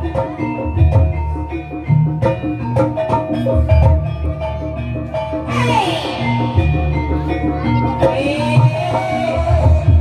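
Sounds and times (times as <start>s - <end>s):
metallophones and gongs melody: 0.0s - 10.0s.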